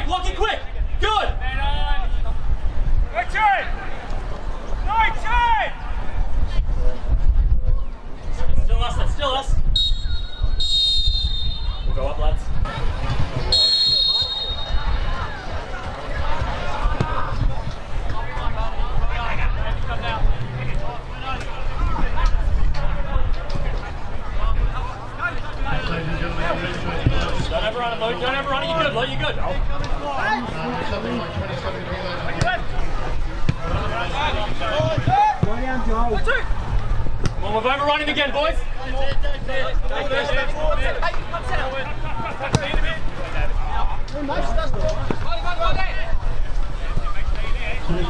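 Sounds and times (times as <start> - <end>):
footballers shouting: 0.0 - 6.2, 12.6 - 48.0
referee's whistle: 9.7 - 12.0, 13.5 - 15.0.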